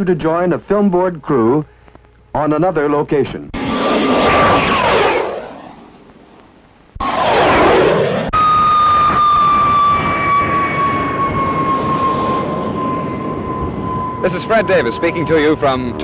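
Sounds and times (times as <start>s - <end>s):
jet engine whine and roar: 3.5s - 6.4s, 7.0s - 16.0s
jet passing with falling whine: 3.5s - 6.4s, 7.0s - 16.0s.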